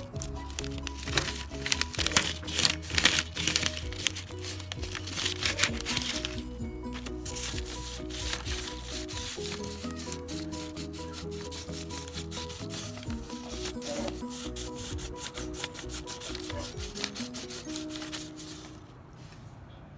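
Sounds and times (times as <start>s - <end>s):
background music melody: 0.0s - 19.2s
crayon scratching on paper: 7.2s - 18.8s.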